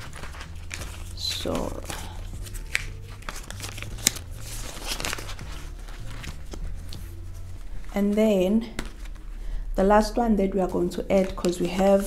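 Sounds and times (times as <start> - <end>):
plastic and paper rustling: 0.0 - 9.4, 11.1 - 12.0.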